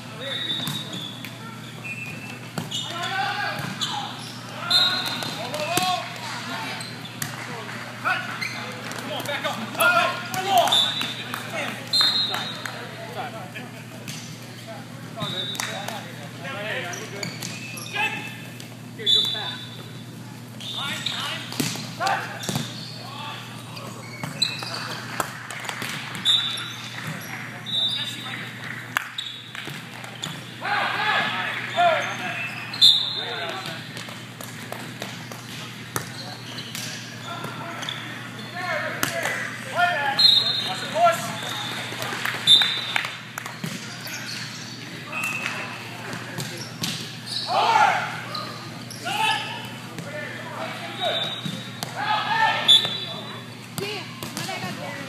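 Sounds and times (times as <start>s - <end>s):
volleyball hits and bounces: 2.0s - 4.0s, 21.5s - 22.8s, 24.2s - 27.3s, 28.6s - 30.5s, 33.4s - 37.6s, 41.2s - 44.0s, 45.3s - 47.2s, 53.7s - 54.8s
players shouting: 2.7s - 6.9s, 30.6s - 33.8s, 47.3s - 53.2s.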